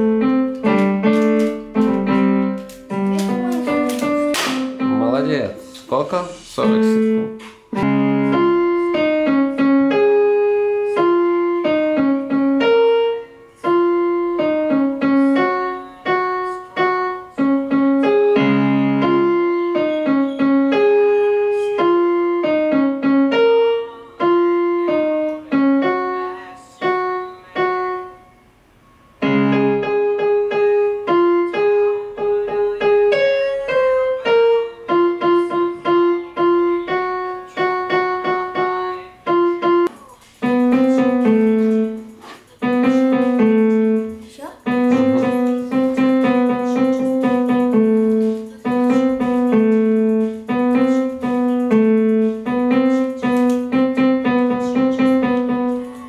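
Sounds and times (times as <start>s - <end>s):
electronic keyboard piano melody: 0.0s - 28.4s, 29.2s - 56.0s.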